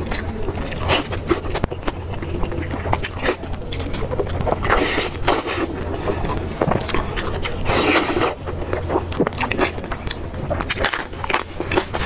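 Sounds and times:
wet chewing and sucking mouth sounds: 0.0 - 12.0.

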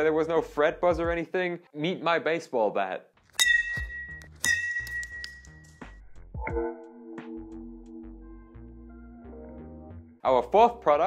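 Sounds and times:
background music: 0.0 - 1.9, 3.2 - 11.0
bat striking metal object ringing: 3.4 - 5.7.

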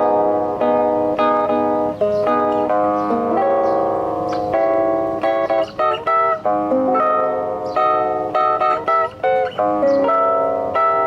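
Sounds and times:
fingerpicked classical guitar: 0.0 - 11.0.

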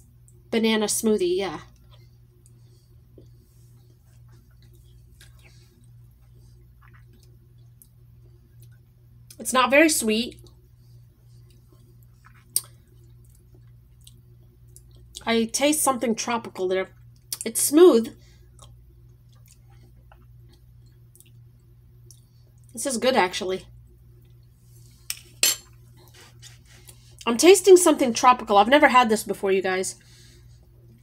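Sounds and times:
steady low hum: 0.0 - 31.0.

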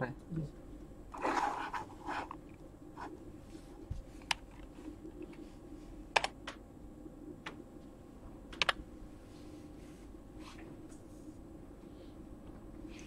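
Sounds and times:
faint steady hum: 0.0 - 13.0
computer keyboard key clicks: 8.5 - 8.8.

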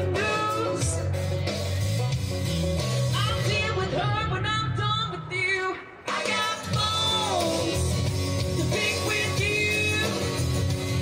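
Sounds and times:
amplified band with bass line: 0.0 - 11.0
woman singing rock song: 3.1 - 7.9, 8.5 - 10.6.

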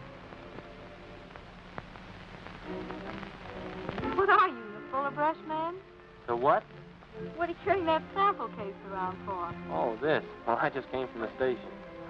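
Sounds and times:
faint steady tones: 0.0 - 12.0
film soundtrack hiss: 0.0 - 12.0
crackling clicks: 0.1 - 4.5.

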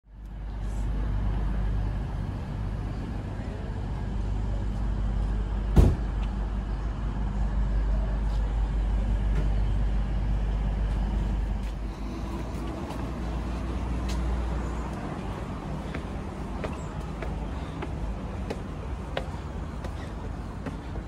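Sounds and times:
road traffic rumble: 0.1 - 21.0.

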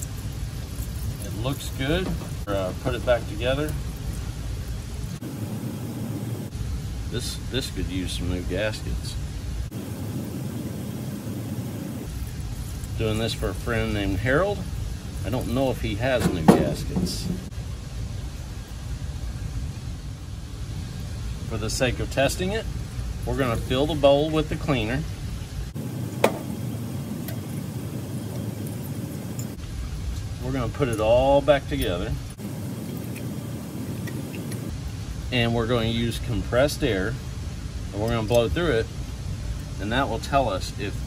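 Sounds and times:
solvent stream splashing hiss: 0.0 - 41.0
solvent stream splashing: 25.7 - 29.6.

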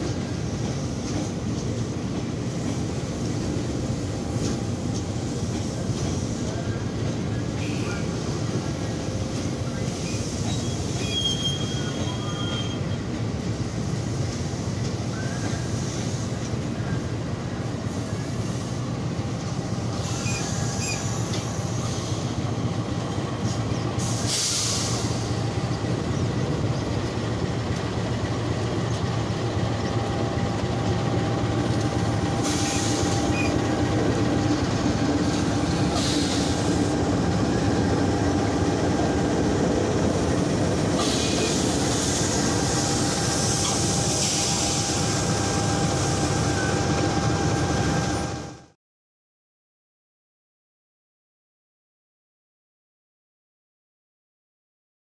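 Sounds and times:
train coaches rolling slowly: 0.0 - 48.7
diesel locomotive rumbling: 0.0 - 48.8.

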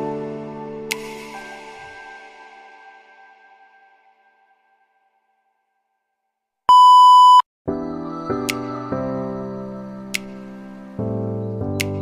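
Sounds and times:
background music: 0.0 - 5.4, 7.7 - 12.0
electronic beep: 6.7 - 7.4.

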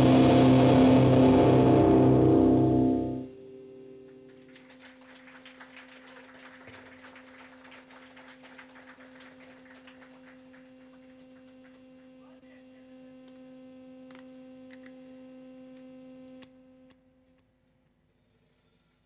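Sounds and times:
faint electric hum: 0.0 - 18.4.

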